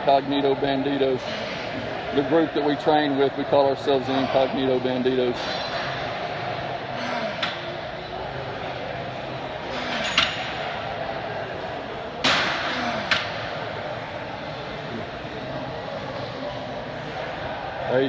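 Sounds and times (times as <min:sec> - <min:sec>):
busy gym background noise: 0:00.0 - 0:18.0.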